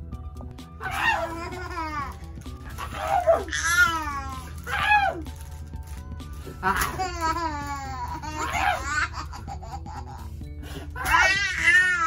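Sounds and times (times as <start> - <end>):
background music: 0.0 - 12.0
baby squealing: 0.8 - 5.3, 6.8 - 9.6, 11.0 - 12.0.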